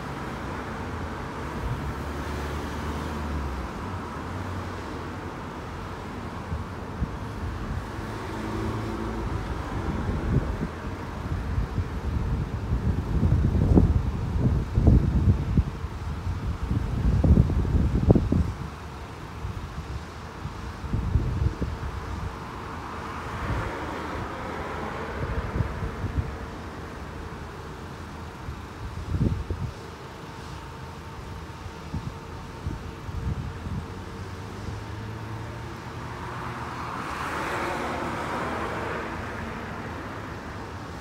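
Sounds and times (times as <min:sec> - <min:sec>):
road traffic rumble: 0:00.0 - 0:41.0
wind buffeting microphone: 0:09.2 - 0:27.0, 0:28.5 - 0:30.0, 0:31.5 - 0:36.5.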